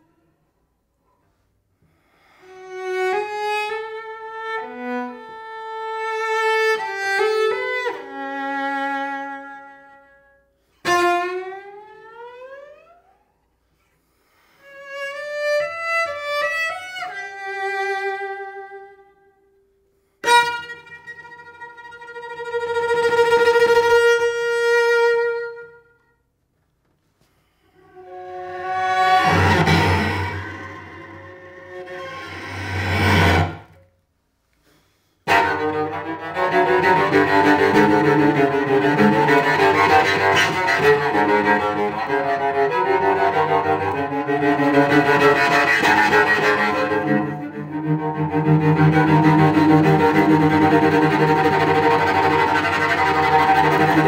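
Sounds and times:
bowed cello: 0:02.3 - 0:13.1, 0:14.5 - 0:19.2, 0:20.2 - 0:25.8, 0:27.7 - 0:34.0, 0:35.2 - 0:54.0.

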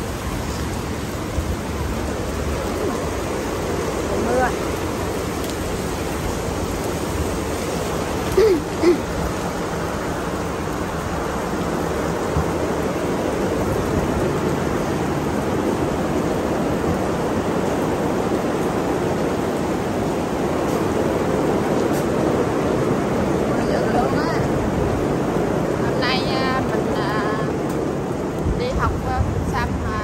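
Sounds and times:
steady rain falling: 0:00.0 - 0:30.0.

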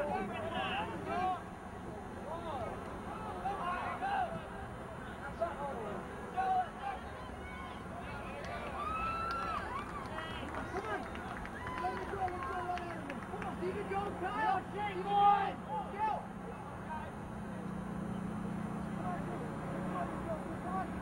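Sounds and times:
distant shouts and calls: 0:00.0 - 0:21.0
steady low hum: 0:12.2 - 0:21.0.

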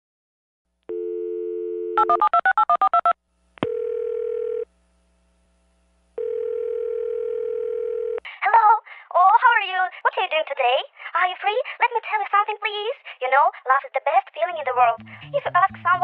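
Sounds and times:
telephone dial tone: 0:00.9 - 0:02.3, 0:03.6 - 0:04.7, 0:06.2 - 0:08.2
telephone ringing tones: 0:00.9 - 0:04.7, 0:06.2 - 0:08.2
telephone line click: 0:03.6 - 0:04.6.

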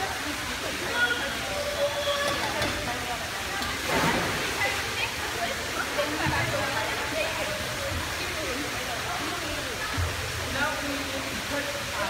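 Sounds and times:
water washing: 0:00.0 - 0:12.0
splash into pool: 0:03.6 - 0:05.2.

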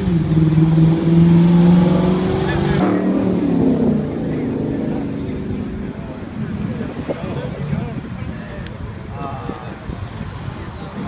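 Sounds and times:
car engine accelerating past: 0:00.0 - 0:05.9.

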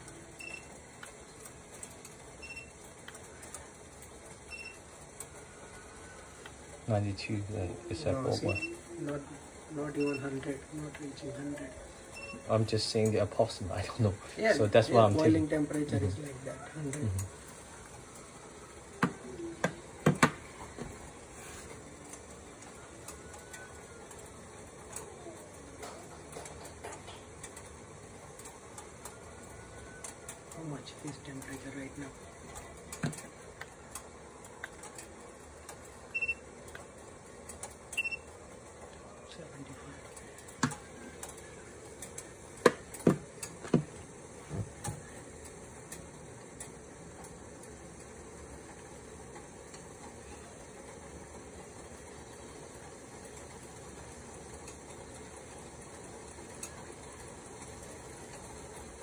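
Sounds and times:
water heating in pot hissing: 0:00.0 - 0:59.0.

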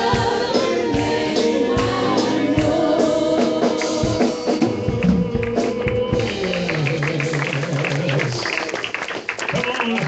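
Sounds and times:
live gospel song: 0:00.0 - 0:09.0.

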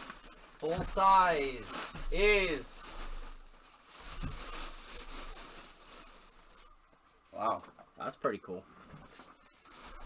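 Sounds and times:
plastic bag rustling: 0:00.0 - 0:07.8, 0:08.8 - 0:10.0.

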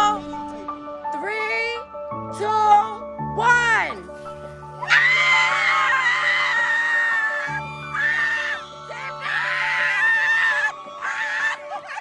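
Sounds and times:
background music: 0:00.0 - 0:12.0
high-pitched screaming: 0:04.8 - 0:12.0.

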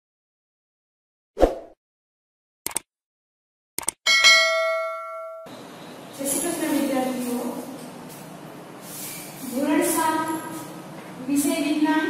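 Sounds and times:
notification bell ding: 0:04.1 - 0:05.5.

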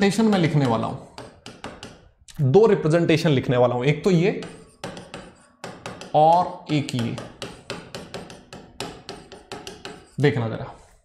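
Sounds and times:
marker pen writing on whiteboard: 0:00.0 - 0:02.2, 0:04.1 - 0:11.0.

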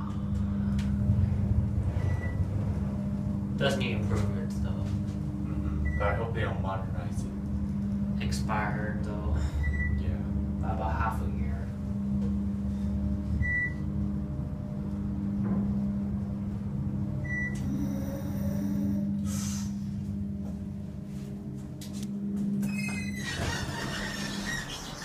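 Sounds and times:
elevator machinery humming: 0:00.0 - 0:25.0.

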